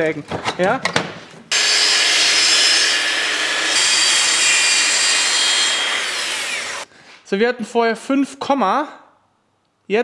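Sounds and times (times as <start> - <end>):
track saw motor whine: 1.5 - 6.8.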